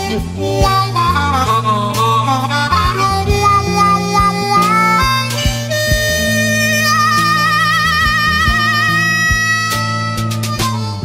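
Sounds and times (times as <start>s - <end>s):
bass and drums: 0.0s - 11.0s
harmonica playing blues: 0.0s - 11.0s.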